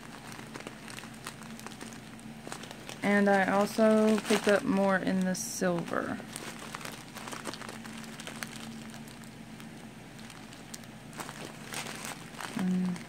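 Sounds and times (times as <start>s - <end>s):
plastic bag of glitter crinkling: 0.0s - 13.0s.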